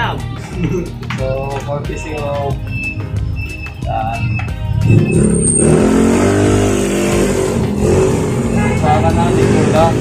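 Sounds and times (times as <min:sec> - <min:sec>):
vehicle engine revving: 0:02.9 - 0:10.0.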